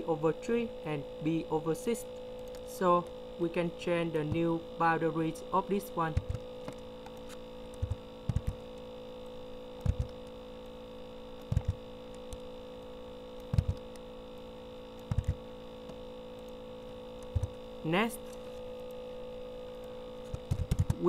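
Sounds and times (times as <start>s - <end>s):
electrical hum: 0.0s - 21.0s
computer mouse clicking: 6.2s - 8.8s, 9.8s - 10.8s, 11.4s - 14.1s, 14.9s - 16.6s, 17.2s - 17.6s, 19.8s - 21.0s.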